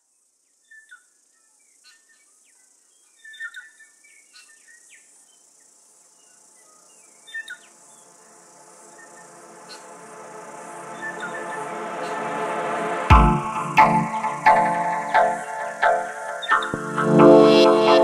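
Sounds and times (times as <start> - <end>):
high insect drone: 5.6 - 16.8.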